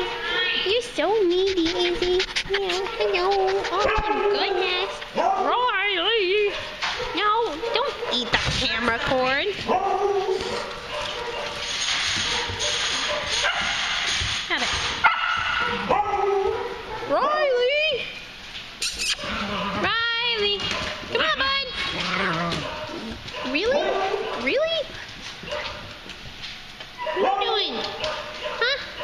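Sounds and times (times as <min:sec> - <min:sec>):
dogs barking and yipping: 0:00.0 - 0:17.7, 0:18.8 - 0:19.8, 0:20.5 - 0:29.0.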